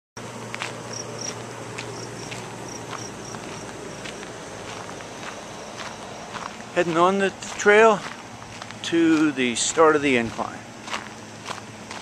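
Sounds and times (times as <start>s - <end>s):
footsteps on gravel: 0.4s - 12.0s.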